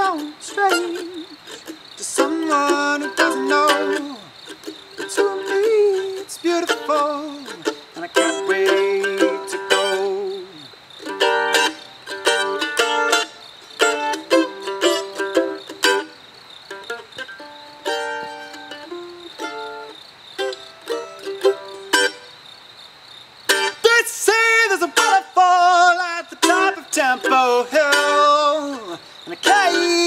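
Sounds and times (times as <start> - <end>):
mandolin picking: 0.0 - 22.4, 23.5 - 30.0.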